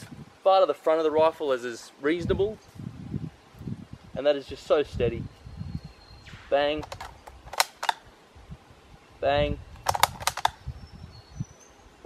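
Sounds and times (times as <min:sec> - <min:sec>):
rifle action metallic clicks: 0:06.8 - 0:08.1, 0:09.8 - 0:10.6.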